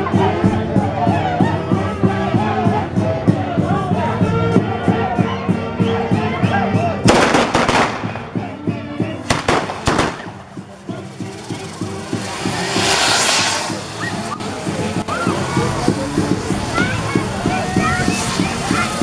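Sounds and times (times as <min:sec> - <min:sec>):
music playing: 0:00.0 - 0:19.0
fireworks crackling bangs: 0:07.0 - 0:19.0
hiss of spraying sparks: 0:09.3 - 0:19.0.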